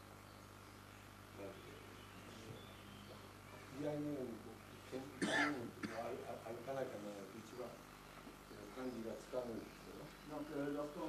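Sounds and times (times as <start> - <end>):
person coughing: 5.2 - 6.2.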